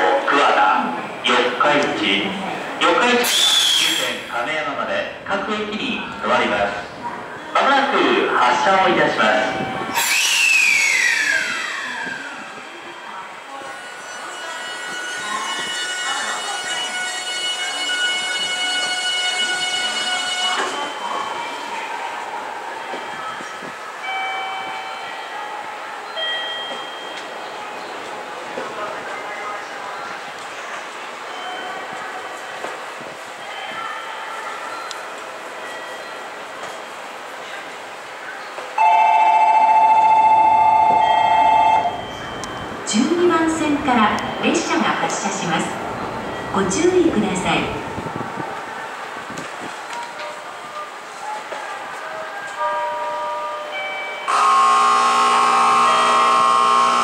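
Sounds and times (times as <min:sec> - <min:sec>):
electronic departure bell ringing: 0:38.8 - 0:43.2, 0:52.6 - 0:57.0
platform ambience: 0:38.8 - 0:48.9
loud steady tone: 0:54.3 - 0:57.0.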